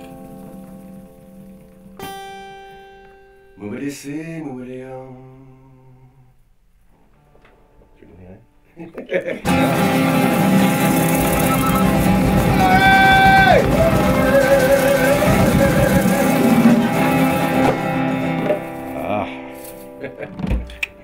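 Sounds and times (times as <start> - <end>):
acoustic guitar: 0.0 - 8.0, 9.4 - 21.0
shaker: 9.5 - 17.7
voices singing: 9.5 - 18.1
hand drum: 9.5 - 19.1.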